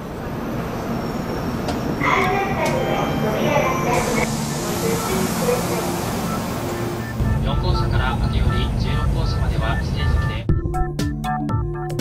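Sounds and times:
train rumble: 0.0s - 10.5s
voices: 2.0s - 10.5s.

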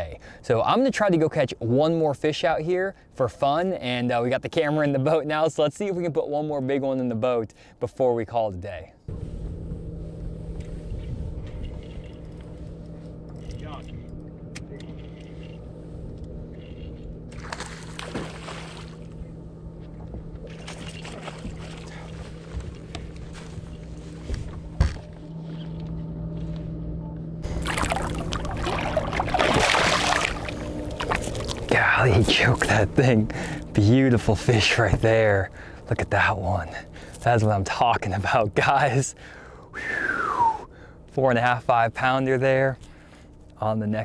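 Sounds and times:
electric motor humming: 18.9s - 35.8s.

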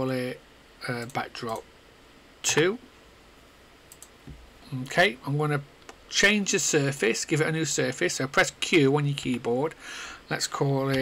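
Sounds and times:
faint room hiss: 0.0s - 11.0s
man saying okay: 2.4s - 2.8s
computer mouse clicks: 3.9s - 4.4s.

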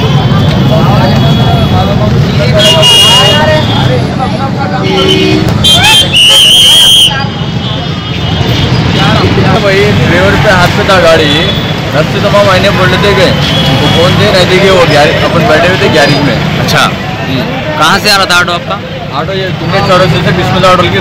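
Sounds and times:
crowd of voices talking: 0.0s - 21.0s
traffic rumble: 0.0s - 21.0s
vehicle horn: 2.6s - 3.9s, 4.8s - 7.1s.

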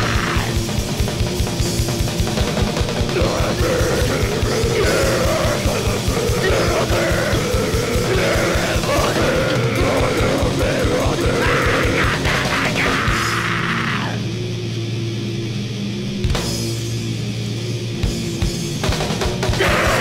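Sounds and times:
fast drumming: 0.0s - 13.7s, 18.8s - 20.0s
distorted guitars: 0.0s - 20.0s.

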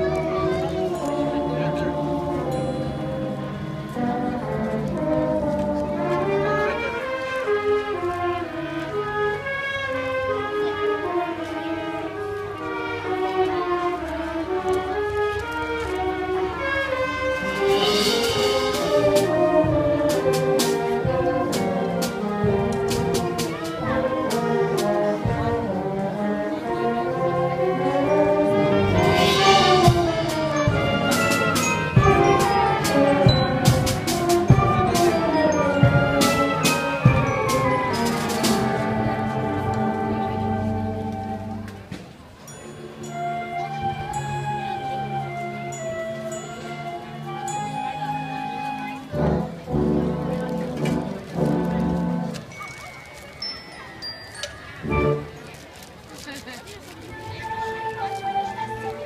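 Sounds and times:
concert band playing: 0.0s - 9.6s, 16.5s - 41.9s, 42.9s - 52.8s.

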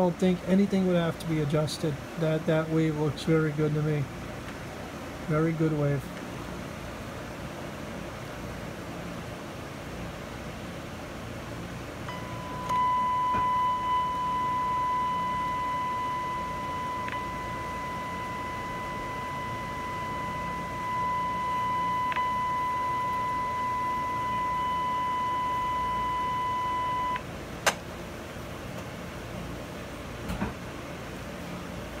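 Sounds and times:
high-pitched test tone: 12.1s - 27.2s.

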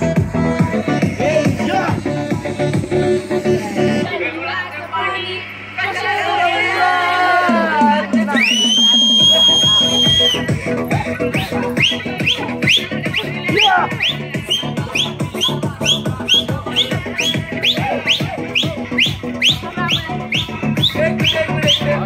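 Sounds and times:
electronic dance music: 0.0s - 22.0s.

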